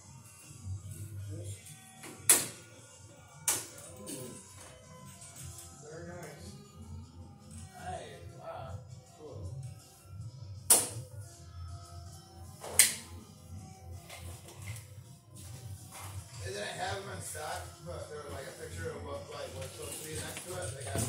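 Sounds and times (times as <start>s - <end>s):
background music with singing: 0.0s - 21.0s.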